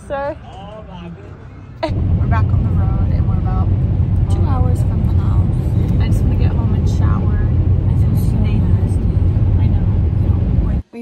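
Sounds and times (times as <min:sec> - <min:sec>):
road and tyre rumble: 0:00.0 - 0:11.0.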